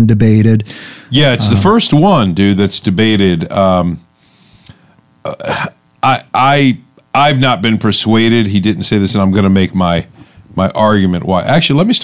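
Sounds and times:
man saying uh: 0:01.1 - 0:03.7.

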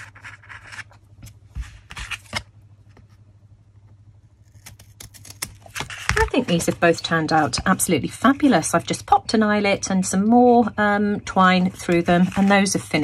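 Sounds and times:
scissors snipping cardstock: 0:04.4 - 0:06.8.

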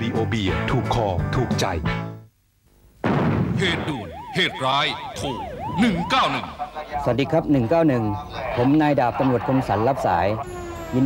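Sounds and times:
police siren wailing: 0:03.6 - 0:11.0.

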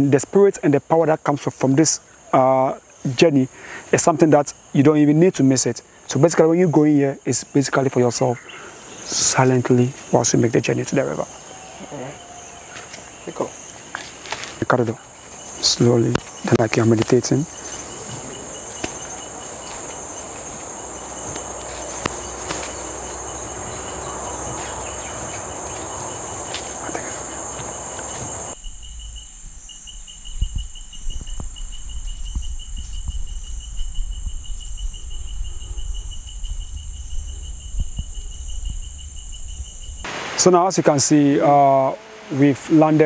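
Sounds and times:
insects buzzing: 0:00.0 - 0:43.0
rapidly pulsing insect chirp: 0:00.0 - 0:43.0.

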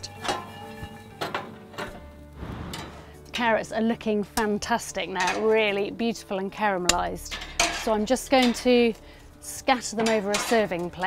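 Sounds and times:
pecans rattling in a pan: 0:00.0 - 0:02.2, 0:04.5 - 0:11.0
background music: 0:00.0 - 0:11.0.

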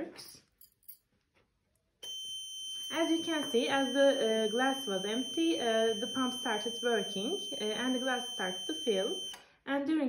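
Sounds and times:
buzzer high-pitched tone: 0:02.0 - 0:09.4.

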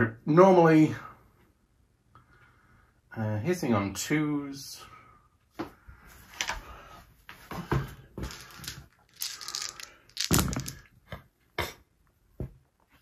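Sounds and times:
dice knocking: 0:08.2 - 0:10.9
dice rattling in a tray: 0:08.2 - 0:10.9.

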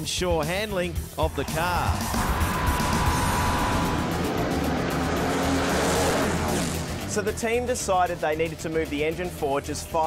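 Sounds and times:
background music: 0:00.0 - 0:10.0
race car engine roaring: 0:01.2 - 0:07.9.

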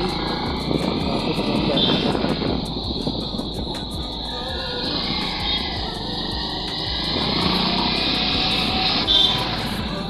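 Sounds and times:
motorbike engine: 0:00.0 - 0:10.0
pop music: 0:00.0 - 0:10.0
wind rumble: 0:00.0 - 0:10.0.

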